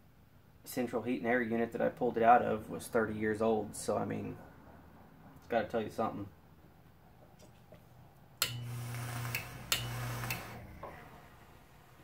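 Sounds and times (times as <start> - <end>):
electrical buzz with hiss: 8.5 - 12.0
relay click: 9.3 - 10.6.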